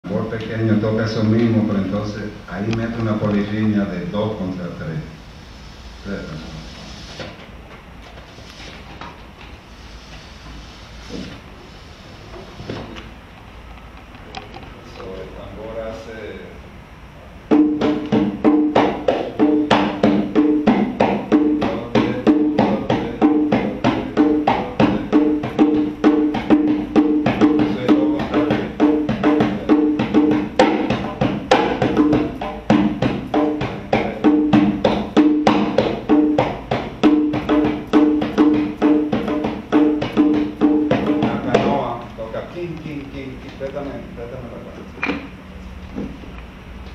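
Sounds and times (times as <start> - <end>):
hand drum played with hands: 17.5 - 41.9.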